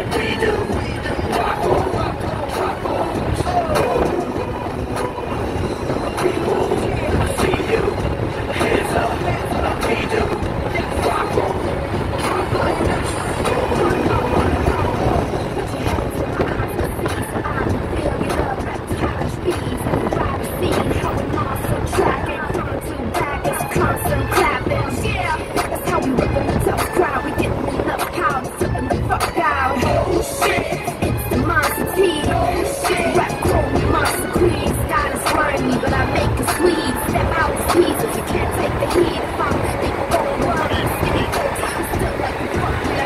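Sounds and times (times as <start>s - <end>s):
car road and engine rumble: 0.0s - 43.0s
music playing: 0.0s - 43.0s
voices: 0.0s - 43.0s.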